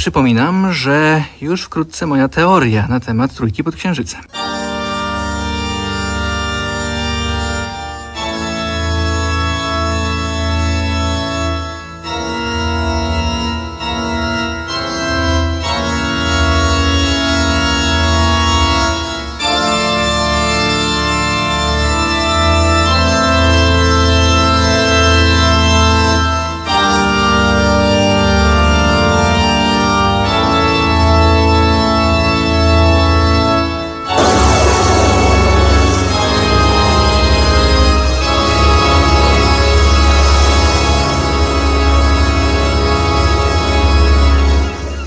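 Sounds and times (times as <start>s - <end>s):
sustained organ chords: 4.3s - 45.0s
hiss-like noise burst: 34.2s - 38.6s.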